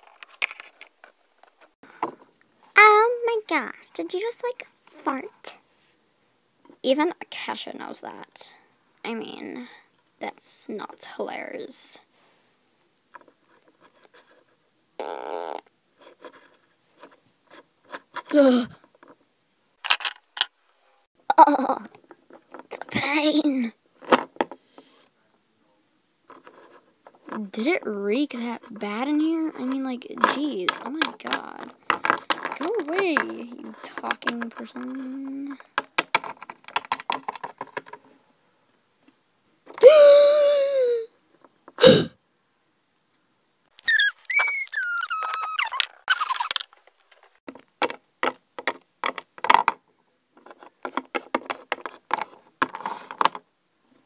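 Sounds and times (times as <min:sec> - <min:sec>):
child making character noises: 0:02.8 - 0:05.6, 0:39.8 - 0:41.1, 0:43.8 - 0:45.8
plastic figurine scraping on wood: 0:28.3 - 0:38.0.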